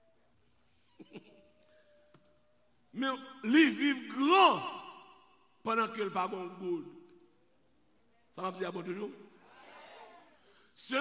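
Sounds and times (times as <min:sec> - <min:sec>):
man speaking: 0:03.0 - 0:07.0, 0:10.8 - 0:11.0.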